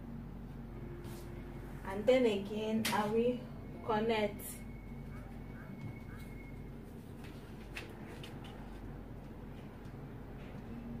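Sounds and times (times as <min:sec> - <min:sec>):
steady low hum: 0:00.0 - 0:11.0
paper rustling: 0:06.2 - 0:08.9.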